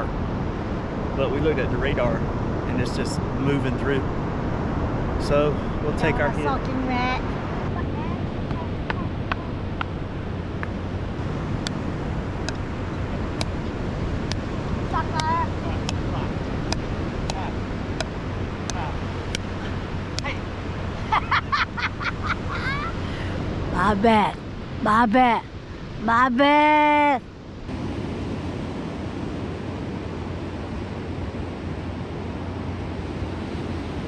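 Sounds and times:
surf: 0.0s - 34.0s
wind noise: 0.0s - 34.0s.

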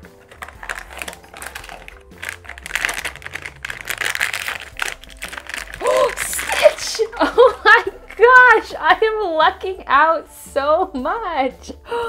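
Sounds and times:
foil bag crinkling and tearing: 0.0s - 8.8s.

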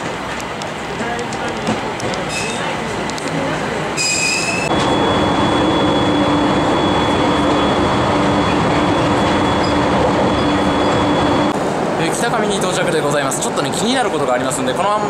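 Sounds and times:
steady low hum: 4.7s - 12.0s.

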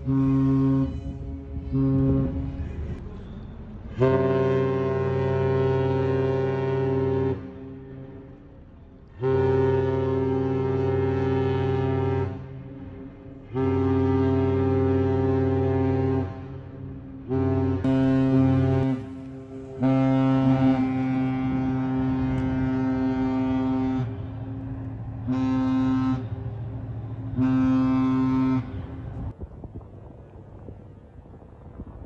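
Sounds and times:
ship horn blasts: 0.0s - 32.0s.

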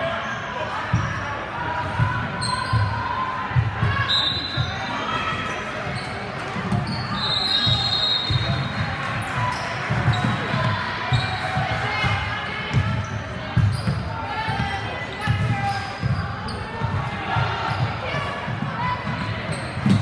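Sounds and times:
sneaker squeaks: 1.9s - 3.0s, 3.9s - 11.6s, 12.7s - 16.9s, 19.1s - 20.0s
echoing indistinct voices: 7.7s - 20.0s.

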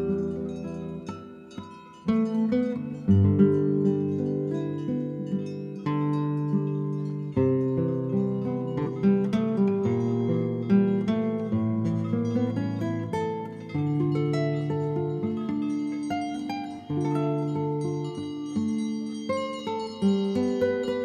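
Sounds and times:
guitar plucked notes and chords: 0.0s - 21.0s.

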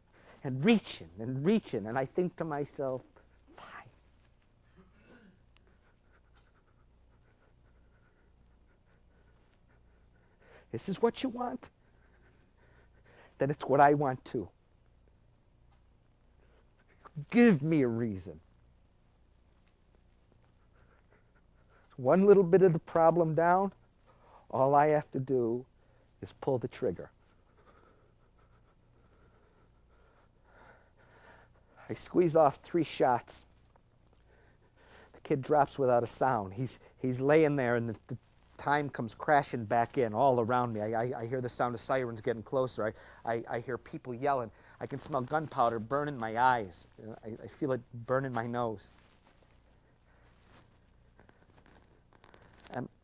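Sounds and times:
man speaking: 0.4s - 4.0s, 10.7s - 11.7s, 13.4s - 14.5s, 17.0s - 18.4s, 21.9s - 23.8s, 24.5s - 27.2s, 31.8s - 33.4s, 35.2s - 49.0s
man breathing softly: 3.2s - 10.8s, 11.7s - 13.4s, 27.2s - 31.8s, 34.0s - 35.2s, 43.0s - 43.2s, 44.5s - 44.8s.

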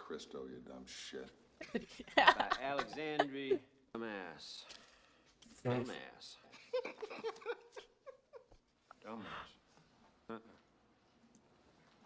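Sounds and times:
woman giggling: 1.6s - 3.6s, 6.6s - 8.6s
woman laughing: 1.6s - 3.6s, 6.6s - 8.6s.

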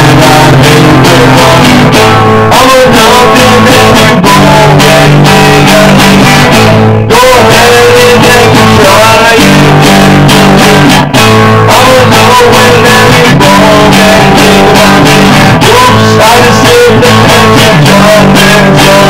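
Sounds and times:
electric guitar strummed chords: 0.0s - 19.0s.

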